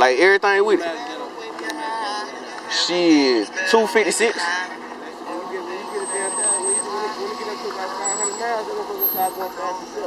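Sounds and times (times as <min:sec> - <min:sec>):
muffled talking: 0:00.0 - 0:10.0
vehicle hum: 0:00.0 - 0:10.0.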